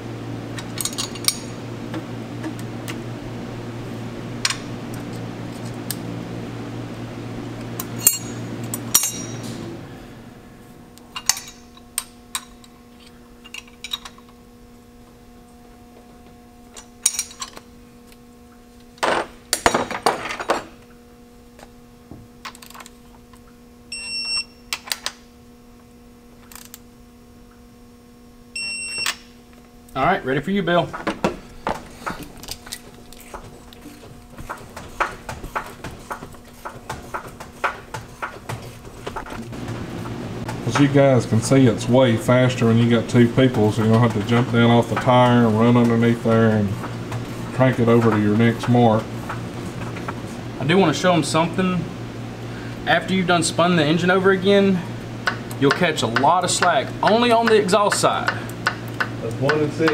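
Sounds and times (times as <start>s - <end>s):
steady hum: 0.0s - 59.9s
metal tools clicking and clinking: 0.6s - 1.5s, 8.0s - 9.5s, 11.1s - 12.7s, 16.8s - 17.6s.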